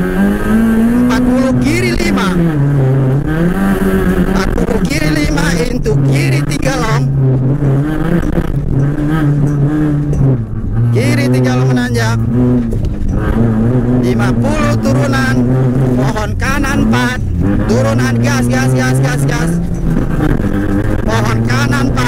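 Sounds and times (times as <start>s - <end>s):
rally car engine running hard: 0.0s - 22.0s.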